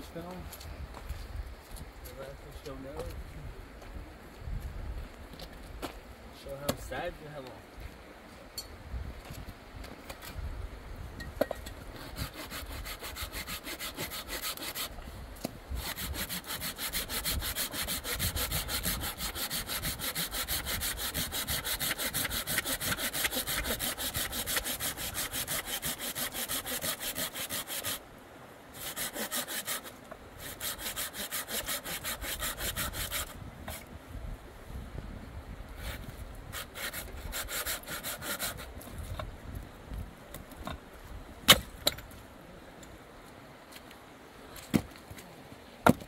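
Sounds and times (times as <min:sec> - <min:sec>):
hand saw cutting branch: 0:11.9 - 0:28.0, 0:28.7 - 0:33.9, 0:35.8 - 0:39.0.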